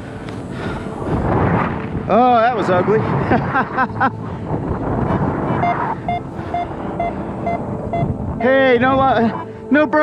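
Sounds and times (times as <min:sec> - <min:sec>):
wind rushing over microphone: 0:00.0 - 0:10.0
short even beeps: 0:05.5 - 0:08.6.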